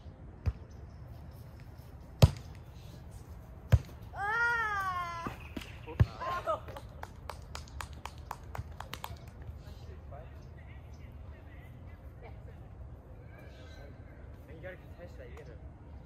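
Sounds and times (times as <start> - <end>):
faint outdoor background: 0.0 - 16.0.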